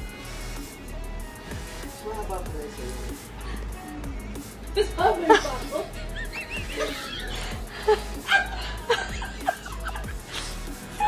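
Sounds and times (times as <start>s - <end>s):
background music: 0.0s - 11.0s
woman laughing hard: 4.8s - 11.0s.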